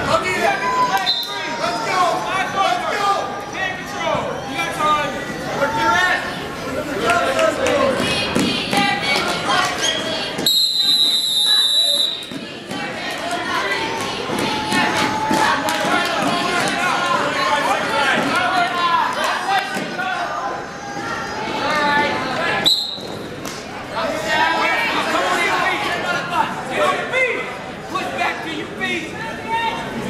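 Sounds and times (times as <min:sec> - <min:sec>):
crowd chatter: 0:00.0 - 0:30.0
referee's whistle blasts: 0:01.0 - 0:01.4, 0:10.4 - 0:12.3, 0:22.6 - 0:23.2.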